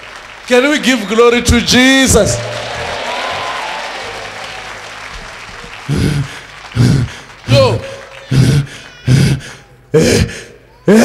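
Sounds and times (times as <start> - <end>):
congregation applauding: 0.0 - 9.7.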